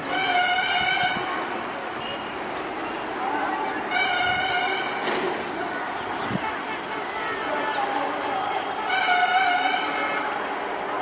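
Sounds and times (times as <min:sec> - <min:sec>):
outdoor background noise: 0:00.0 - 0:11.0
vehicle horn honking: 0:03.9 - 0:05.1.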